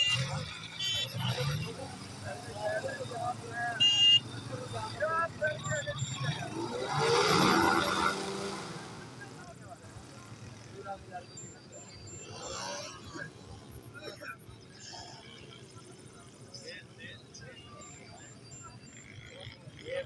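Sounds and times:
people talking: 0.0 - 20.0.

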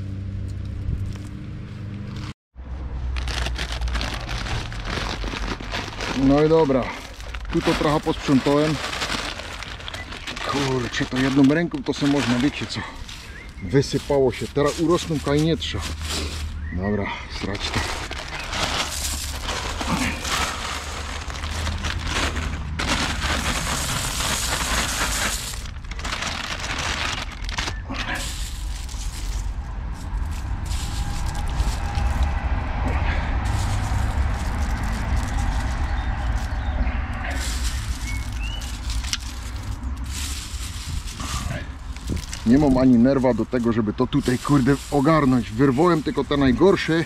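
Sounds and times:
low rumble: 0.0 - 16.8, 17.5 - 47.0
seeds rustling in plastic bag: 3.0 - 47.0
hand rustling in soil: 3.2 - 47.0.

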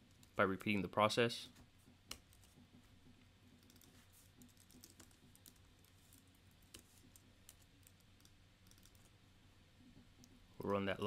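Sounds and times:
computer keyboard typing: 3.6 - 9.1.

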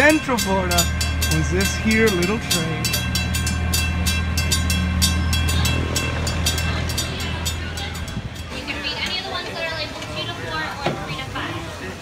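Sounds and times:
train engine drone: 0.0 - 10.6
wheels clicking and clattering: 0.0 - 11.3.

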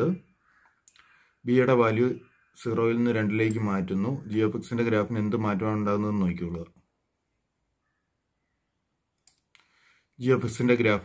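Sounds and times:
person speaking: 0.0 - 7.0, 10.2 - 11.0
computer mouse click: 9.2 - 9.7.

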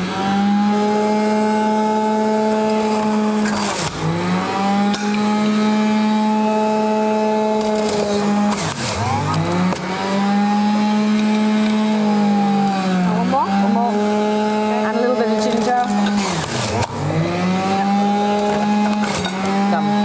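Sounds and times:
electric juicer motor whine: 0.0 - 20.0.

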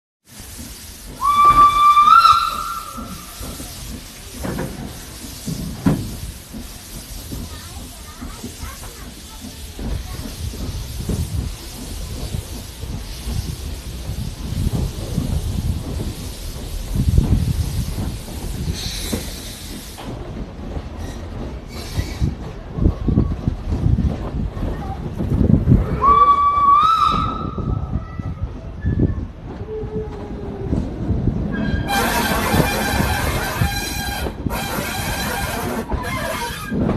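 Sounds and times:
train running noise: 0.2 - 36.9
carriage rumbling on rails: 0.4 - 36.9
steam locomotive whistle: 1.2 - 3.5, 25.9 - 27.7, 31.5 - 36.8.

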